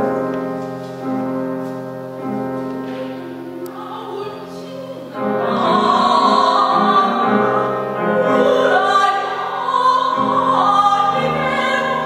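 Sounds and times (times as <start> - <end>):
grand piano accompaniment: 0.0 - 12.0
woman singing opera with vibrato: 3.6 - 12.0.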